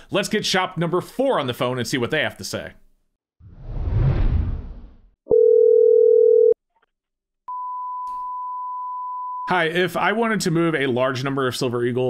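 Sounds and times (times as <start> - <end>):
low electronic beep: 7.5 - 9.5.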